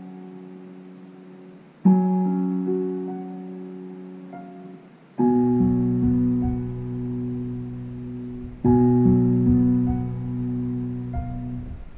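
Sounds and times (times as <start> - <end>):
digital piano chords: 0.0 - 11.9.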